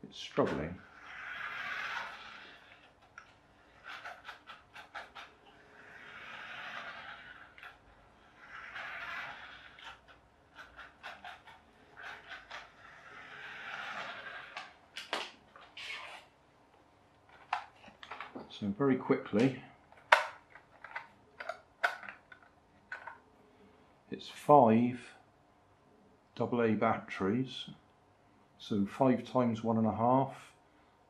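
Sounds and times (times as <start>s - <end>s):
toy car electric motor whirring: 0.8s - 14.8s.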